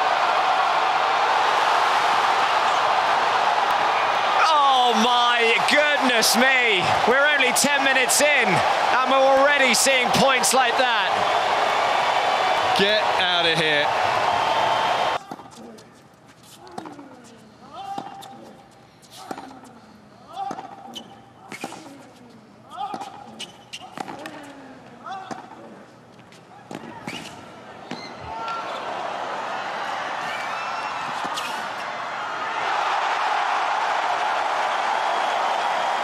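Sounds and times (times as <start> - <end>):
crowd cheering: 0.0 - 15.2, 28.3 - 36.0.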